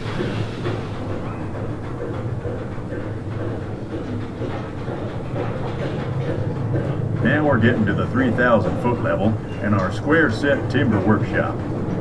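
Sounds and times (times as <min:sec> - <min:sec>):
train cars rumbling on track: 0:00.0 - 0:12.0.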